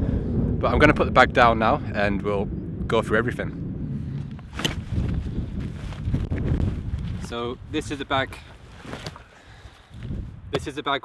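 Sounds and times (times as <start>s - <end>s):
wind rumbling on microphone: 0.0s - 10.9s
backpack rustling and handling: 4.4s - 10.1s.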